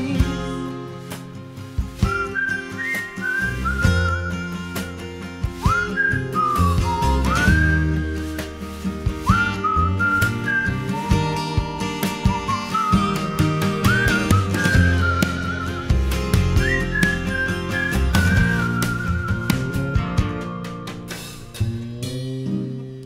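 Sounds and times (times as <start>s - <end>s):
pop band backing: 0.0s - 23.0s
whistled melody: 1.8s - 21.9s.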